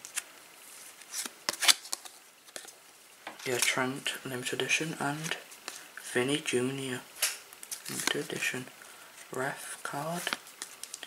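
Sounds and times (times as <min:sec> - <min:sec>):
trading cards swishing and snapping: 0:01.0 - 0:02.7.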